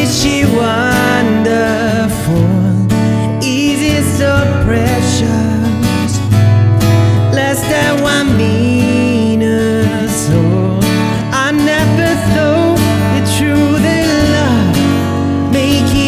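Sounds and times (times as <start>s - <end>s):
acoustic guitar strumming chords: 0.0s - 16.0s.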